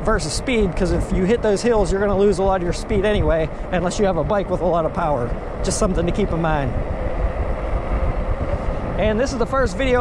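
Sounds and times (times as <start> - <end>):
bike road noise: 0.0 - 10.0
wind buffeting microphone: 0.0 - 10.0.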